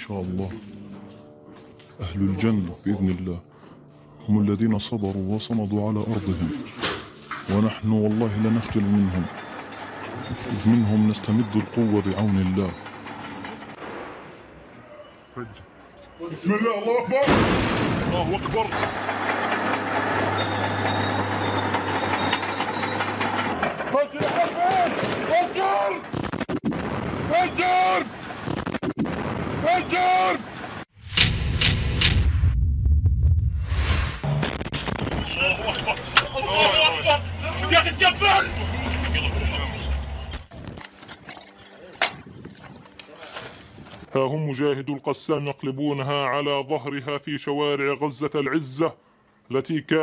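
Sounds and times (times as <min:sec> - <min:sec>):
men's voices: 0:04.2 - 0:09.4, 0:10.0 - 0:12.9, 0:35.2 - 0:40.3
clanking tracks: 0:04.7 - 0:16.5, 0:17.3 - 0:25.3
bulldozer engine running: 0:07.1 - 0:14.7, 0:18.0 - 0:24.1, 0:35.2 - 0:41.6
sharp knock: 0:31.0 - 0:32.5
steady low rumble: 0:31.1 - 0:36.2.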